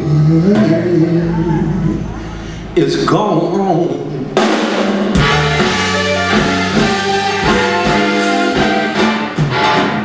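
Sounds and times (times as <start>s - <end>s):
electric blues band playing: 4.1s - 10.0s
drum kit hits: 4.4s - 10.0s.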